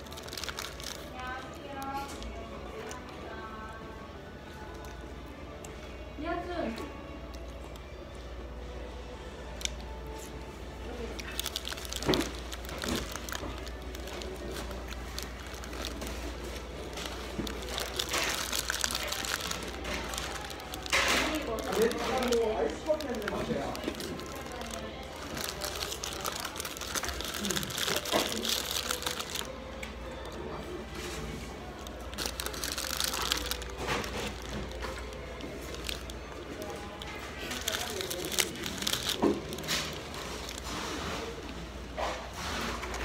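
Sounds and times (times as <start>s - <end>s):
paper wrapper crinkling: 0.0s - 2.9s, 9.6s - 41.6s
background music: 0.0s - 43.0s.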